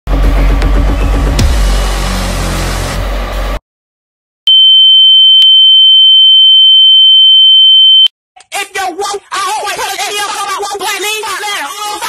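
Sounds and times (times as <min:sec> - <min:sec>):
loud noise with deep bass: 0:00.1 - 0:03.6
high-pitched electronic beep: 0:04.5 - 0:08.1.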